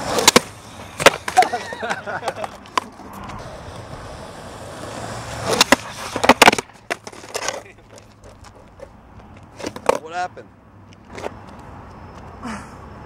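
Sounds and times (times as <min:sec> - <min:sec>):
skateboard clattering impacts: 0:00.0 - 0:03.0, 0:04.8 - 0:08.9, 0:09.5 - 0:10.2
skateboard popping: 0:00.0 - 0:10.2, 0:10.9 - 0:12.2
skateboard wheels rolling on concrete: 0:00.0 - 0:13.0.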